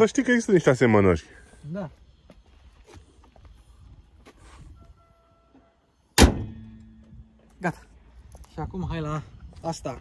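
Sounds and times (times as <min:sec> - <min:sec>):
car bonnet slamming shut: 0:06.2 - 0:06.9.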